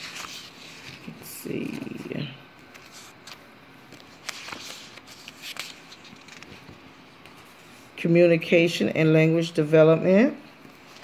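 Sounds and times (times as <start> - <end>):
paper crinkles: 0.0 - 7.9
paper pages rustling: 0.0 - 8.0, 10.6 - 11.0.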